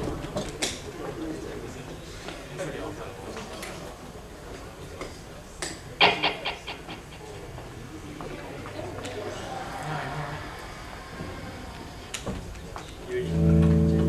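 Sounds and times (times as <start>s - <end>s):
hall room noise: 0.0s - 14.0s.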